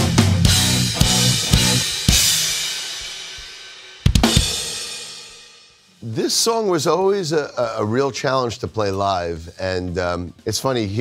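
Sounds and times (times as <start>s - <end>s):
cymbal and drum crash: 0.0s - 5.9s.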